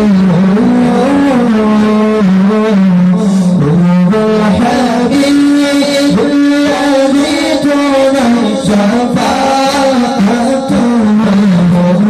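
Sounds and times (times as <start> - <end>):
man humming: 0.0 - 12.0.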